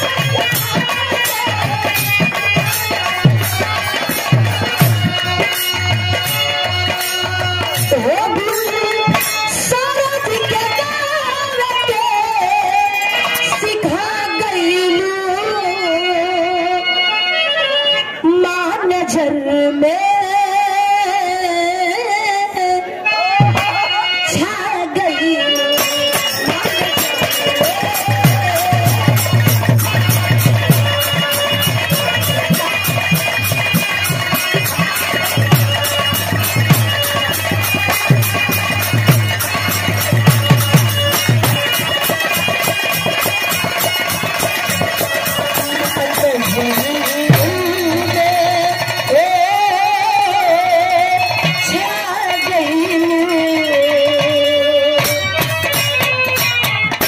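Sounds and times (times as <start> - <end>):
fast percussion beat: 0.0 - 12.1, 25.4 - 57.0
woman singing folk song: 13.5 - 16.8, 18.2 - 23.6, 46.0 - 55.0.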